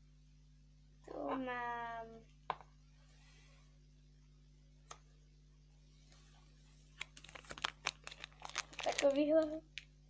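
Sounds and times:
foil packet crinkling: 6.9 - 9.9.

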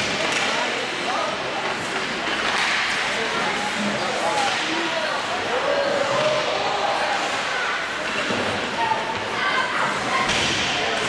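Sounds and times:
ice hockey play noise: 0.0 - 11.0
spectators' voices: 0.0 - 11.0.

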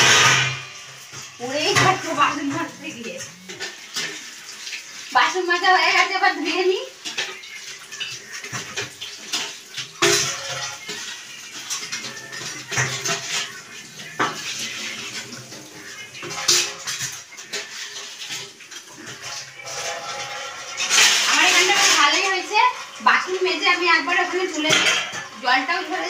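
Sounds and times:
dishes and pots clattering: 0.0 - 5.0, 6.9 - 23.0, 24.1 - 25.4
tap water running: 0.0 - 26.0.

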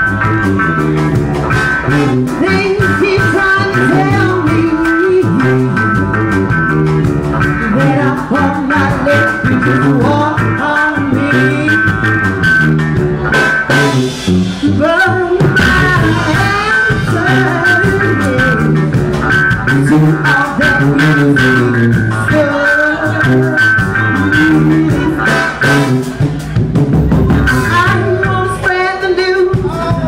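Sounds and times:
brass funk band playing: 0.0 - 30.0.

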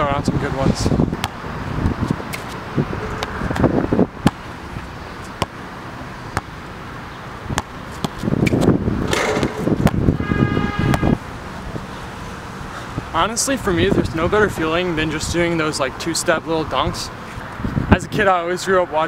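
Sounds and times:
basketball bouncing on hard court: 7.5 - 10.1.

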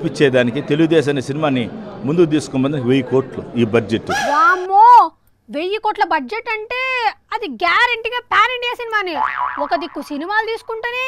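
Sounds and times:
comic boing sound effect: 4.1 - 4.7, 9.2 - 10.2
woman speaking: 4.2 - 11.0.

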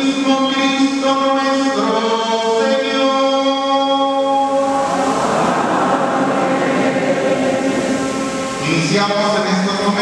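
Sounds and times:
held sung chant: 0.0 - 10.0
loud dense steady noise: 0.0 - 10.0.

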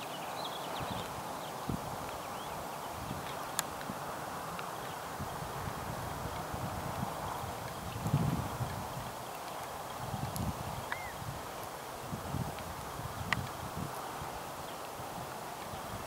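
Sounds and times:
steady outdoor hiss: 0.0 - 16.0.

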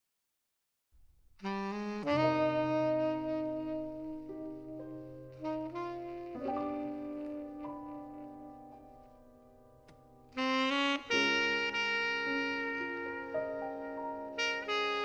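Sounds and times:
piano chords: 1.4 - 15.0
tenor saxophone ballad melody: 1.4 - 15.0.

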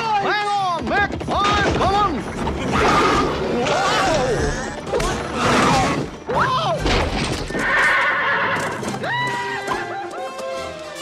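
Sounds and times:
film soundtrack music: 0.0 - 11.0.

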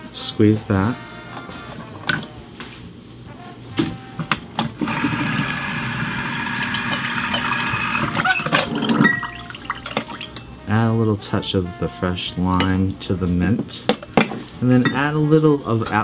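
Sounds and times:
juice trickling into glass: 4.8 - 10.4.

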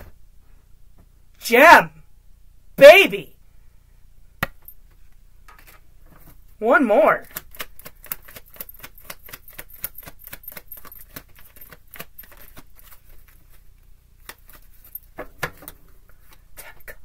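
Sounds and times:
cards being shuffled: 4.9 - 6.4, 7.2 - 17.0.

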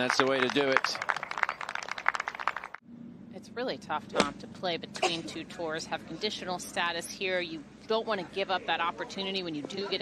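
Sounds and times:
crowd applauding: 0.0 - 2.8.

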